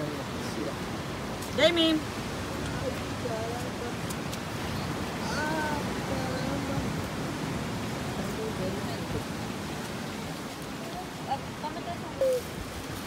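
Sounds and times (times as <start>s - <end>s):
ocean surf on rocks: 0.0s - 13.0s.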